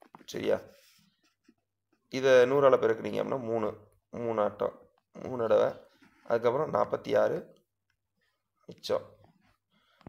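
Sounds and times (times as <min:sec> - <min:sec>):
man speaking: 0:00.2 - 0:00.8, 0:02.1 - 0:07.6, 0:08.7 - 0:09.2.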